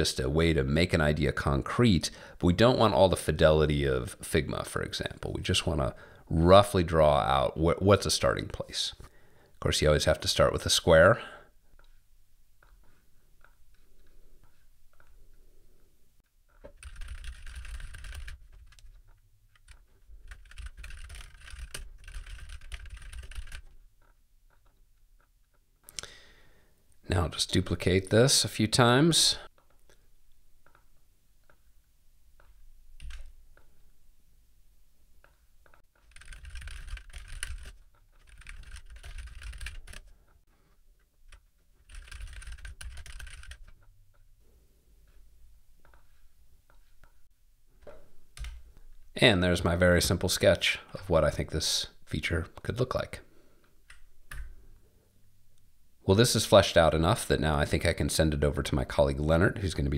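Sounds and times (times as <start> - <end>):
typing on computer keyboard: 16.6 - 23.8, 33.0 - 33.3, 36.0 - 40.2, 41.3 - 43.9.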